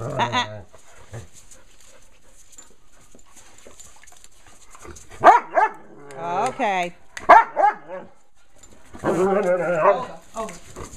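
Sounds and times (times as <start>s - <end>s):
dog barking: 5.2s - 5.8s, 7.3s - 8.0s.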